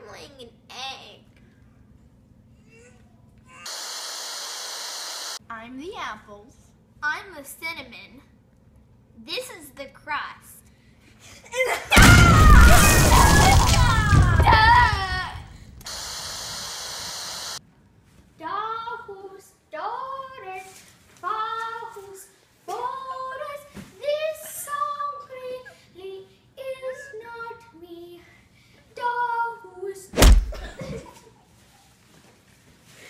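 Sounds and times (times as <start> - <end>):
loud tv static hiss: 3.7 - 5.4, 15.9 - 17.6
shouting: 11.9 - 15.5
steady even hiss: 15.9 - 17.6
child singing: 18.4 - 28.2, 29.0 - 30.1.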